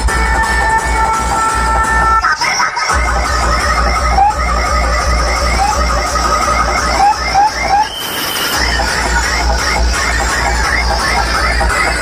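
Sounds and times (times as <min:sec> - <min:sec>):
heavy-bass electronic music: 0:00.0 - 0:12.0
squealing synth chirps: 0:05.3 - 0:11.2.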